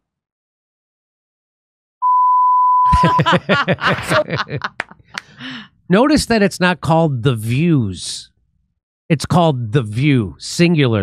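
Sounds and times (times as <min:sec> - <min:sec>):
electronic test tone beep: 0:02.0 - 0:03.3
person speaking: 0:02.9 - 0:08.3.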